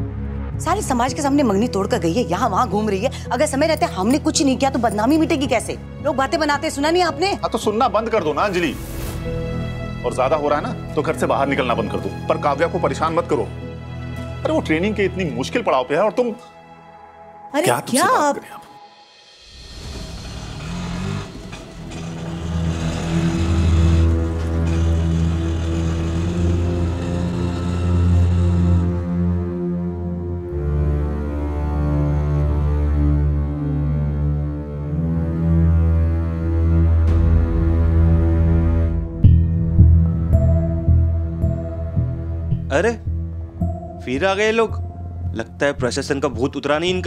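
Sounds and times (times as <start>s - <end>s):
tense low bass drone music: 0.0s - 7.9s, 18.7s - 47.0s.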